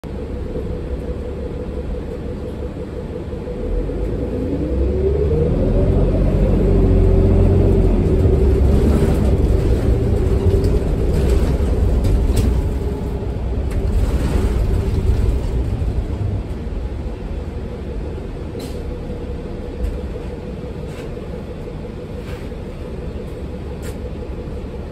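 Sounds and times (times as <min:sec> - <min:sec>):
bus engine rumble: 0:00.0 - 0:24.9
rising whine: 0:00.1 - 0:24.8.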